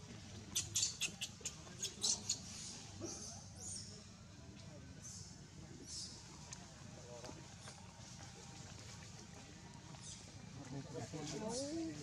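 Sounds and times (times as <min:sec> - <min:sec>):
infant monkey squeaking cries: 0:00.6 - 0:02.4.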